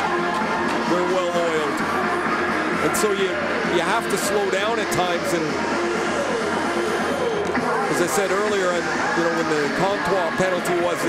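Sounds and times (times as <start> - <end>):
crowd and rink noise: 0.0 - 11.0
indistinct voices: 0.0 - 11.0
music over stadium loudspeakers: 0.0 - 11.0.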